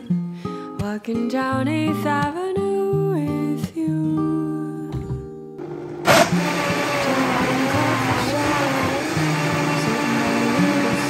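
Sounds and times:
blender running: 0:05.6 - 0:11.0.

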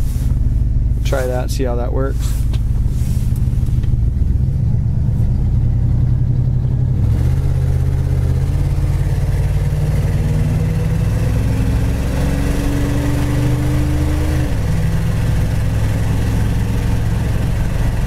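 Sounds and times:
car engine pulling in gear: 0:00.0 - 0:18.0
road noise: 0:00.0 - 0:18.0.

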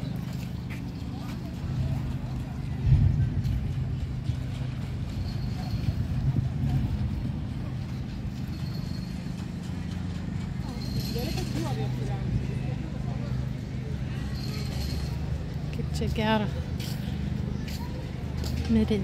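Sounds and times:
low engine hum: 0:00.0 - 0:19.0
people's voices: 0:00.0 - 0:19.0.

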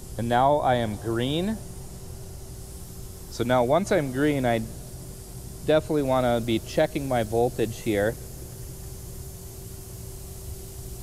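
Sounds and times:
faint even hum: 0:00.0 - 0:11.0
steady hiss: 0:00.0 - 0:11.0.

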